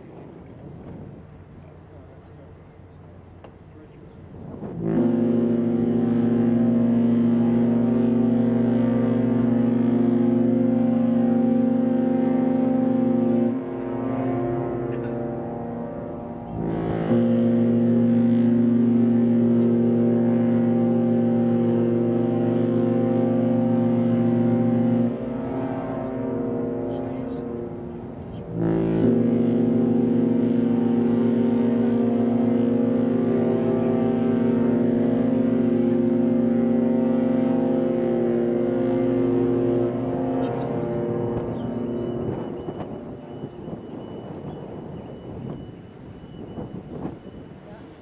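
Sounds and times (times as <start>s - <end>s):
deep ship's horn blasts: 0.0s - 48.0s.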